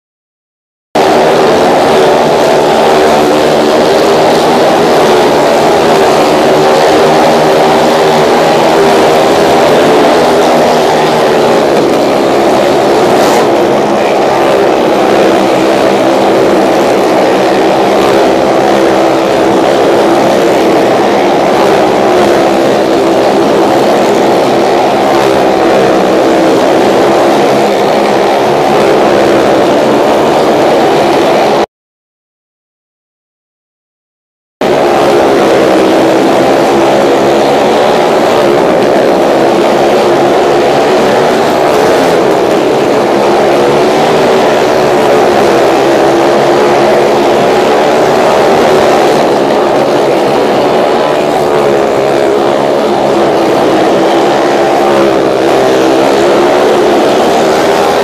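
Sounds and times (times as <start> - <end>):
motorcycle engines at high revs: 1.0 - 31.7, 34.6 - 58.0.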